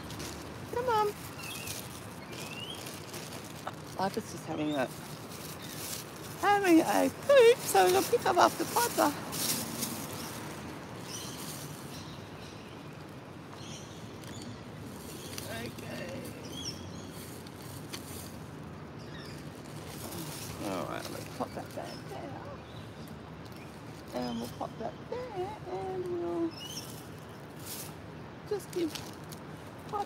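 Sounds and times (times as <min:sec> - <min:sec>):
birds chirping: 0:00.0 - 0:27.5.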